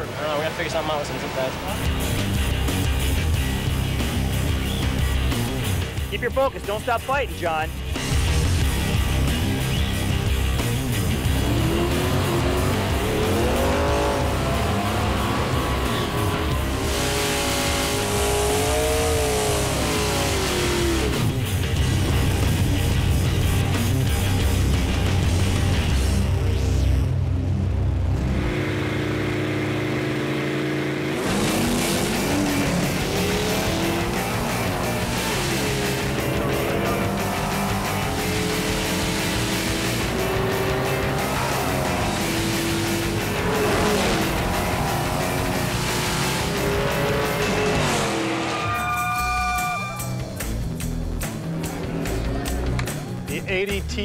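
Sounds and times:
background music: 0:00.0 - 0:29.8, 0:30.7 - 0:54.0
drag car engines revving: 0:00.0 - 0:54.0.

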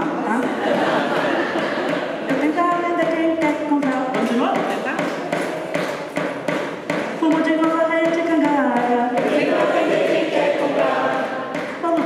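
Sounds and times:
sharp percussive taps: 0:00.3 - 0:12.0
chorus singing: 0:09.1 - 0:12.0.

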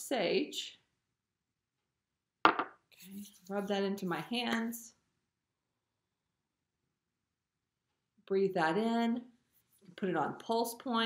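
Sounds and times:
knock on glass bottle: 0:02.5 - 0:02.8.

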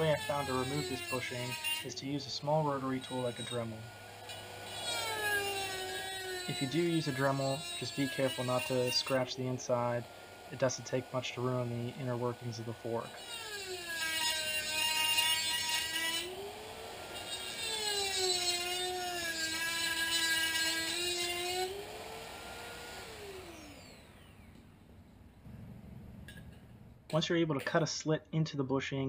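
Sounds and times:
rotary tool grinding metal: 0:00.0 - 0:24.5.

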